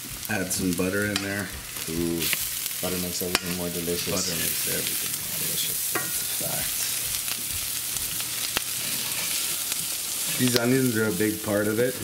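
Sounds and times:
onions sizzling in a skillet: 0.0s - 12.0s
wooden spoon stirring: 4.2s - 11.3s.

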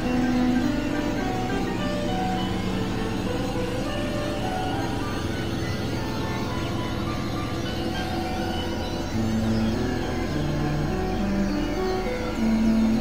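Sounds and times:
electronic synthesizer drone music: 0.0s - 13.0s.

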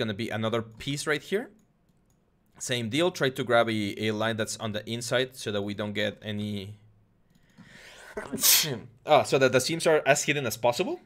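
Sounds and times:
man sneezing: 8.2s - 8.9s.

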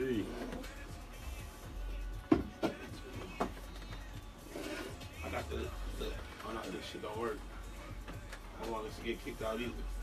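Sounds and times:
equipment knocking near microphone: 2.2s - 3.6s.

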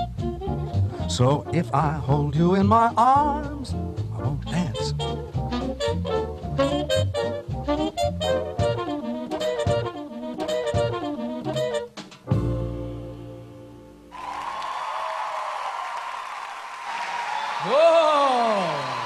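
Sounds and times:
swing big band playing: 0.0s - 13.5s
audience applause: 14.1s - 19.0s.

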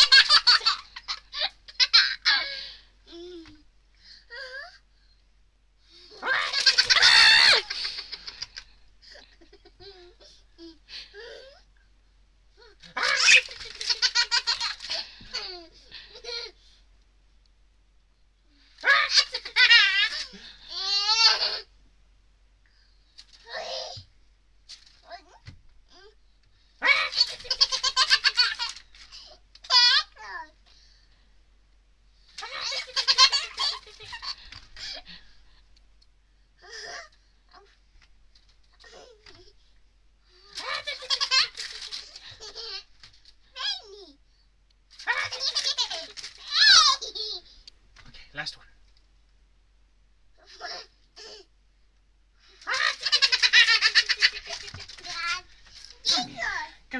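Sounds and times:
toddler squealing with laughter: 6.2s - 7.8s.

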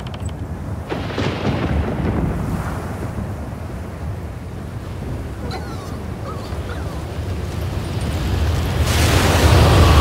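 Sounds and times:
rushing wind: 0.0s - 10.0s.

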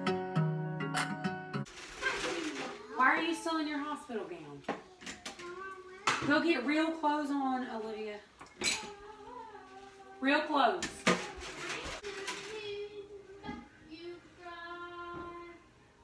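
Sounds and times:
dishes and cutlery clinking: 8.4s - 9.0s.

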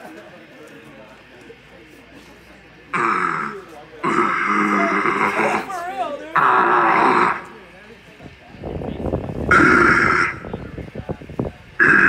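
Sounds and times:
guttural screams into microphone: 9.5s - 10.4s, 11.8s - 12.0s.

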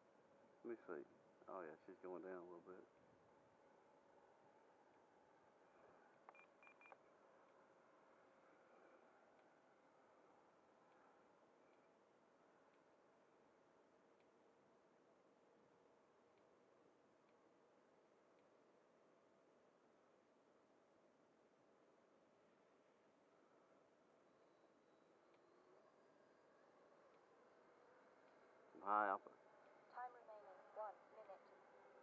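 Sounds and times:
faint steady hum: 0.0s - 32.0s.

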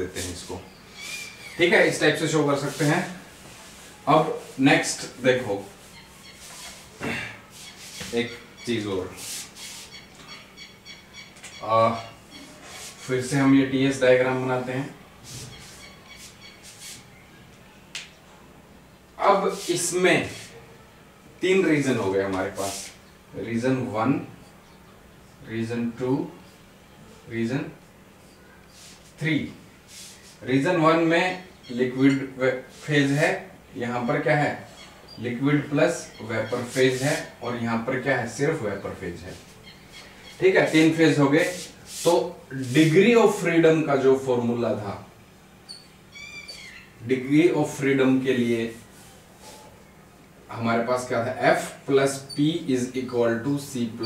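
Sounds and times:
whiteboard marker squeaking: 0.3s - 3.1s, 4.2s - 6.9s, 7.5s - 13.3s, 15.3s - 17.1s, 36.0s - 37.3s, 45.7s - 47.0s.

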